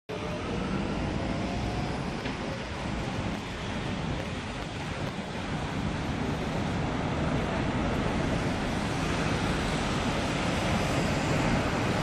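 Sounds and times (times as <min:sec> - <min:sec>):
low traffic rumble: 0:00.1 - 0:12.0
wind buffeting microphone: 0:01.7 - 0:12.0.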